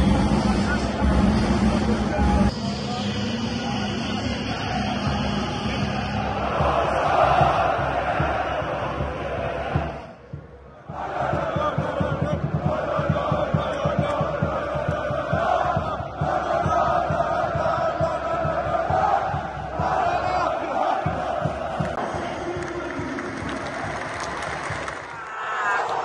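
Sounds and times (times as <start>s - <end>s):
crowd chanting in unison: 3.4s - 22.6s
fast low beat: 4.1s - 25.0s.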